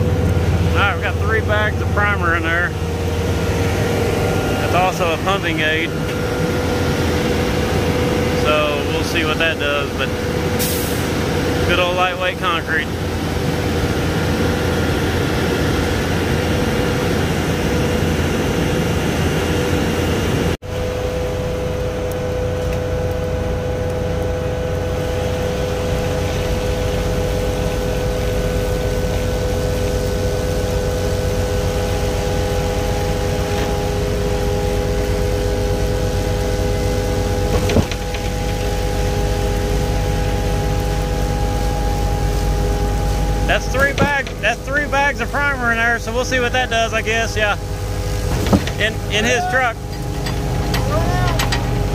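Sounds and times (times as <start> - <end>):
pump truck engine and hydraulics: 0.0 - 51.9.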